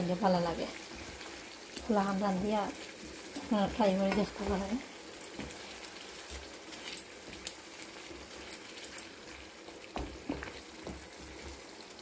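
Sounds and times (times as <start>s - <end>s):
sauce sizzling and bubbling: 0.0s - 12.0s
wooden spatula knocking pan: 4.0s - 4.7s, 9.7s - 11.6s.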